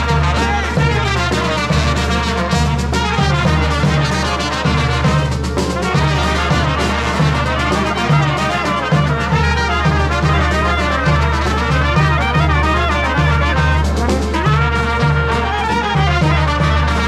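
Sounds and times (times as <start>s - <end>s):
accordion: 0.0s - 17.0s
clarinet: 0.0s - 17.0s
steady bass drum beat: 0.0s - 17.0s
trumpets and trombone: 0.0s - 17.0s.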